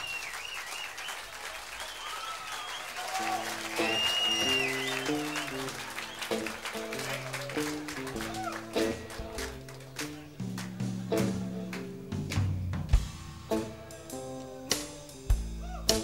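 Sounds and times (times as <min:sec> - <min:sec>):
audience applause: 0:00.0 - 0:12.5
guitar and bass notes: 0:03.7 - 0:16.0.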